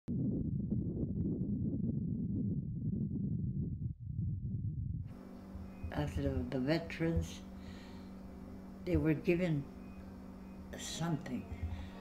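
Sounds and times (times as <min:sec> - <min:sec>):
wind buffeting microphone: 0:00.1 - 0:07.4.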